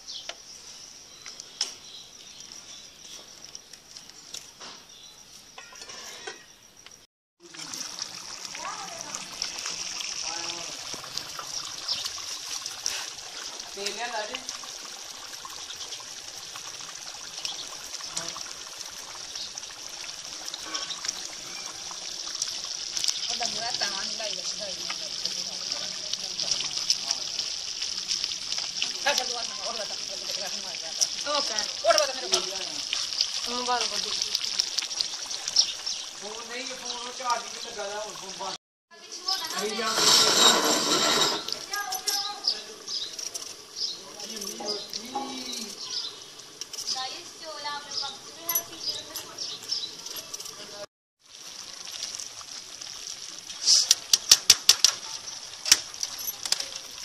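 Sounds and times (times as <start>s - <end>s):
curry bubbling in a pot: 7.4s - 38.6s, 48.9s - 57.0s.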